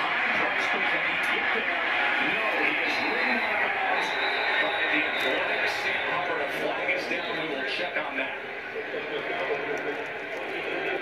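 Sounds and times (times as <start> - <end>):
television sports commentary: 0.0 - 11.0.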